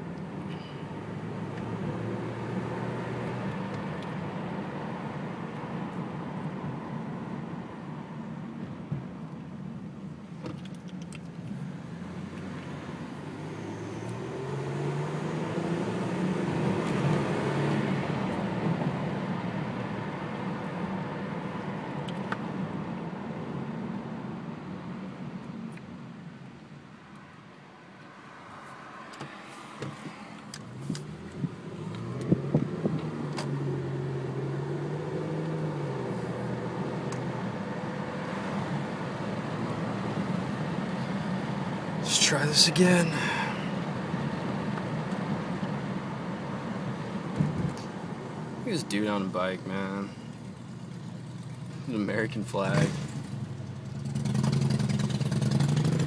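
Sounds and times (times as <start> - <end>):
car engine revving: 12.1 - 21.1, 51.9 - 56.0.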